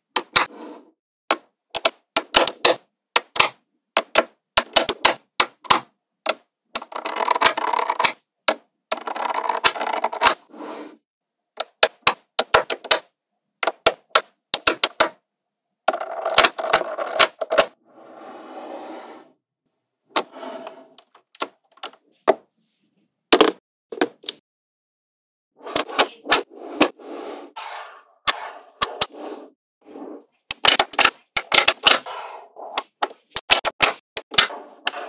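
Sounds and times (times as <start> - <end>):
magnetic balls snapping together: 30.5 - 32.0.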